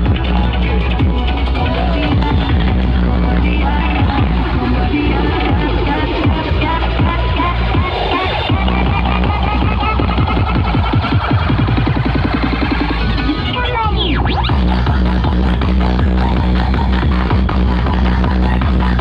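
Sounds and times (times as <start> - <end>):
sweeping pitch effect: 0.0 - 18.0
loud electronic dance music: 0.0 - 19.0.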